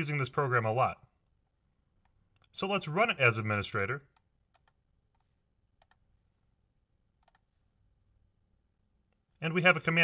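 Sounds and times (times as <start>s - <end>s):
computer mouse clicks: 4.1s - 6.1s, 7.2s - 7.5s.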